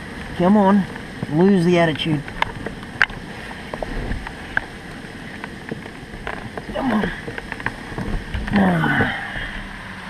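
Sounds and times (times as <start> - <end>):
steady rain: 0.0 - 10.0.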